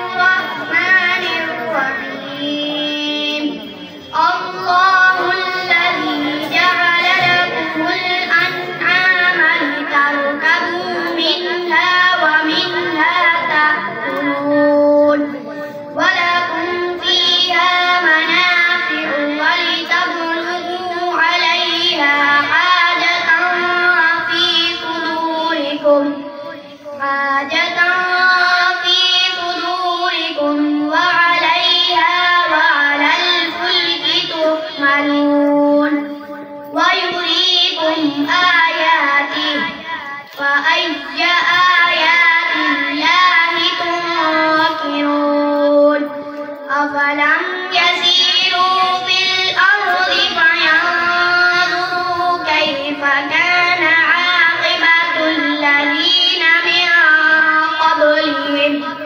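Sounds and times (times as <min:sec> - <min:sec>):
boy reciting melodically: 0:00.0 - 0:59.0.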